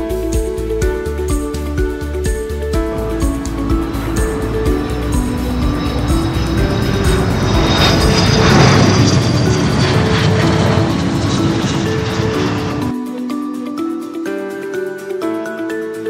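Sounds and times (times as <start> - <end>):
background music: 0.0 - 16.0
aircraft flyby roar: 2.8 - 12.9.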